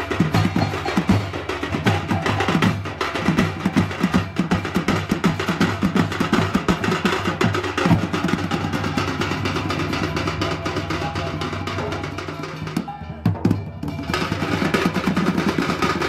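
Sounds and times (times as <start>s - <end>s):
fast folk drumming: 0.0s - 16.0s.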